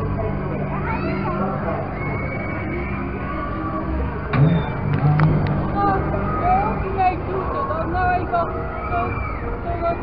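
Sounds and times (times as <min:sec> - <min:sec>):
distant voices: 0:00.0 - 0:10.0
ride machine hum: 0:00.0 - 0:10.0.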